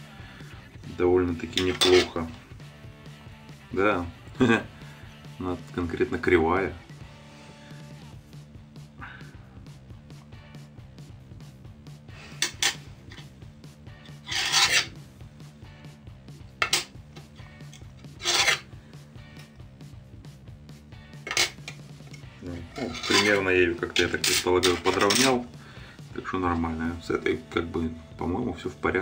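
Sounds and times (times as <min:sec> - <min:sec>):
short scraping strokes: 0:14.1 - 0:15.0, 0:18.0 - 0:18.7.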